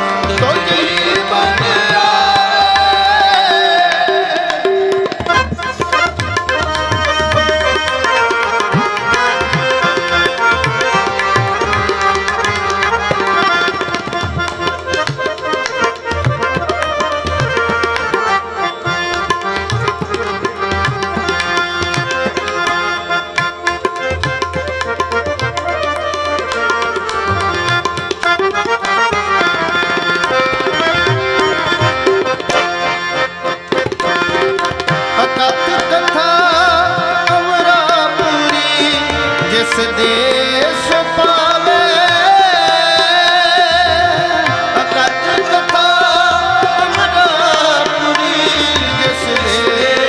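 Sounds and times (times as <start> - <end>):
person singing: 0.0 - 6.0, 35.2 - 50.0
harmonium chords: 0.0 - 50.0
tabla strokes: 0.0 - 50.0.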